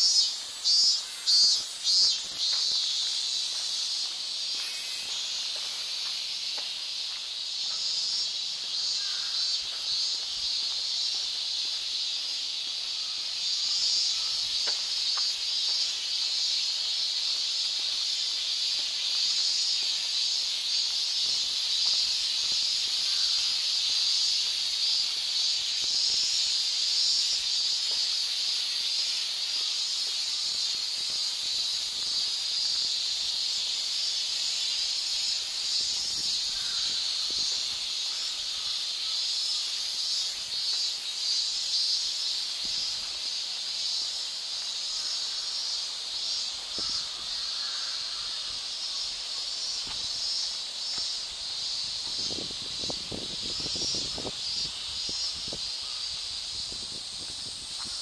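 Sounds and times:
cicadas buzzing: 0:00.0 - 0:58.0.

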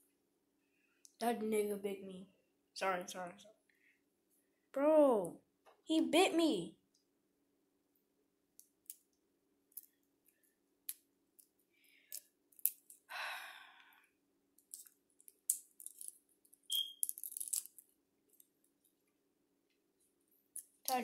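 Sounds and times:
eggshell cracking while peeled: 0:12.1 - 0:13.0, 0:14.6 - 0:17.9.

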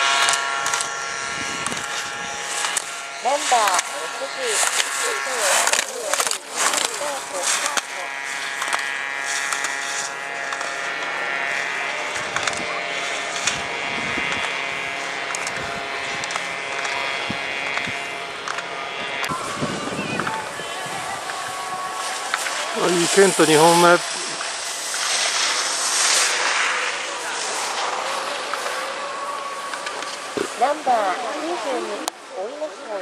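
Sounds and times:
skis scraping on hard snow: 0:00.0 - 0:19.4, 0:20.0 - 0:32.1
voices in background: 0:03.2 - 0:08.4, 0:19.3 - 0:33.0.

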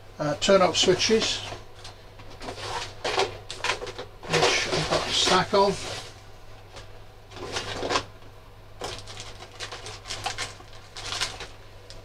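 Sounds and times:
low electrical hum: 0:00.0 - 0:12.0
rustling and handling on workbench: 0:00.7 - 0:08.1.

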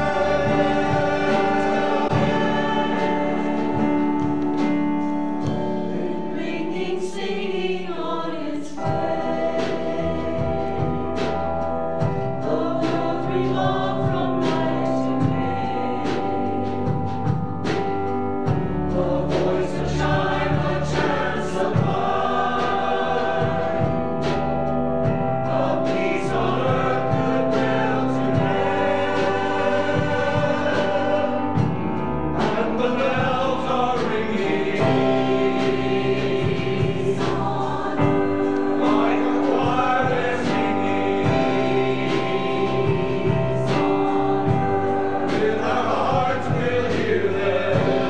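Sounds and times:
instrumental accompaniment with percussion: 0:00.0 - 0:07.3, 0:08.8 - 0:48.0
choir singing in parts: 0:00.0 - 0:48.0.

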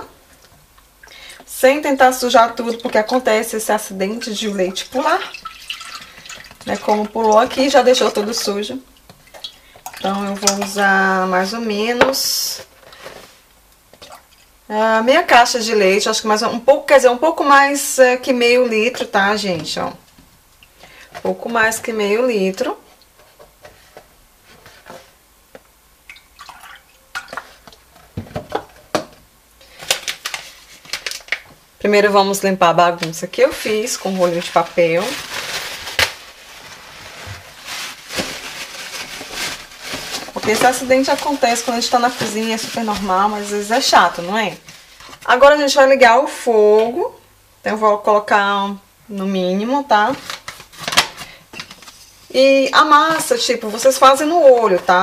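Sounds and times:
paper bag rustling: 0:29.7 - 0:31.3, 0:33.4 - 0:45.4.

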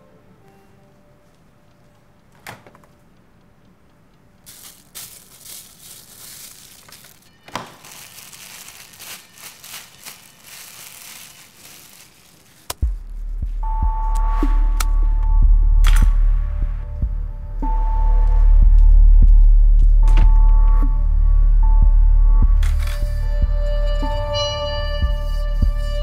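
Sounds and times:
rustling and crinkling handling: 0:04.4 - 0:13.0.

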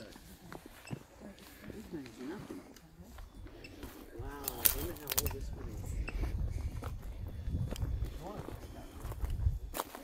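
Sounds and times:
faint voices talking: 0:00.0 - 0:10.0.

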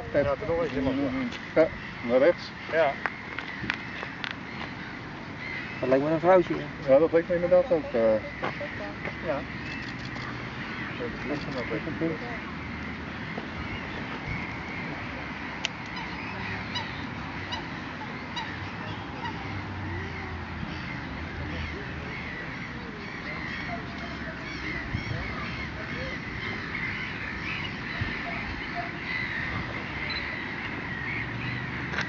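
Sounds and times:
chorus of birds calling: 0:00.0 - 0:32.0.

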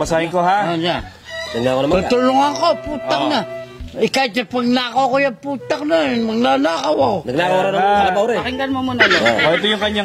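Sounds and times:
chickens clucking: 0:00.1 - 0:04.0
rooster crowing: 0:01.0 - 0:03.6.

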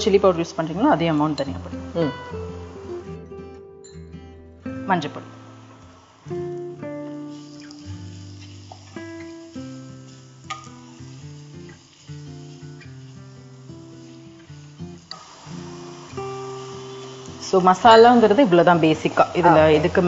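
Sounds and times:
plucked melody music: 0:00.7 - 0:05.2.

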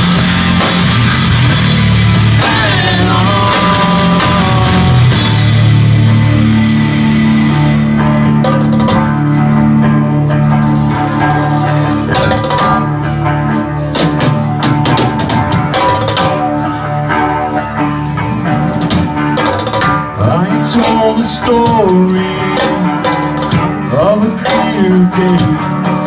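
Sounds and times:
bass guitar: 0:00.0 - 0:26.0
drum kit: 0:00.0 - 0:26.0
electric guitars: 0:00.0 - 0:26.0.

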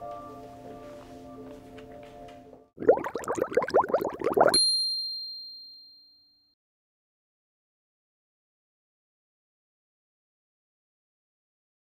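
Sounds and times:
soft background music: 0:00.0 - 0:02.8
bright ding: 0:04.6 - 0:06.5.

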